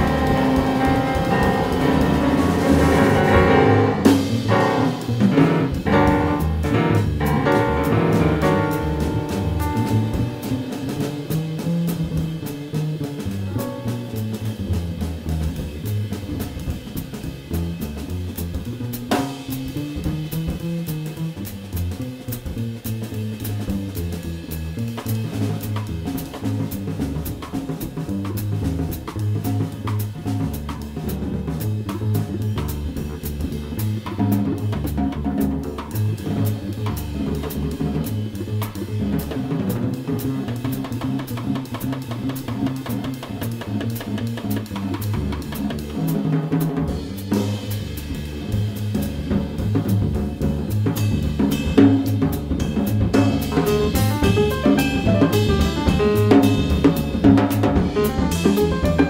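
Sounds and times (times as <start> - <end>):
piano: 0.0 - 22.0, 23.1 - 59.0
double bass: 0.0 - 59.0
drum kit: 0.0 - 59.0.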